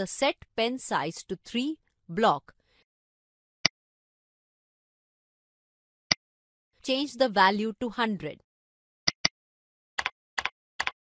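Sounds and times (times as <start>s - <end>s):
keyboard keystrokes: 10.0s - 11.0s.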